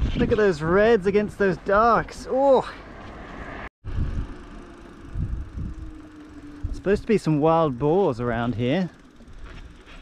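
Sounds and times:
wind buffeting microphone: 0.0s - 2.0s, 3.8s - 8.0s.

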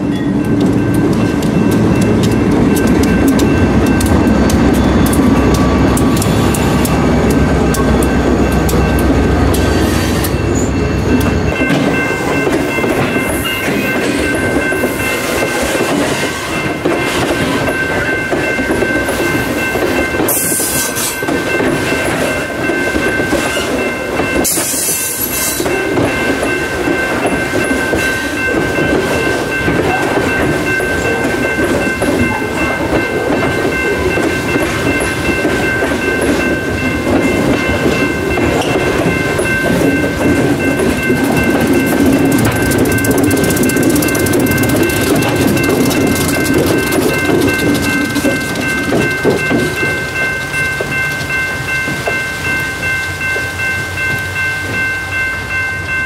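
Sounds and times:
wheels clacking over rail joints: 0.0s - 52.3s
freight train rumble: 0.0s - 56.0s.

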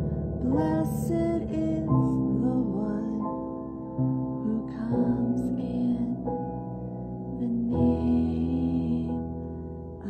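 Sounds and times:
slow piano chords: 0.0s - 10.0s.

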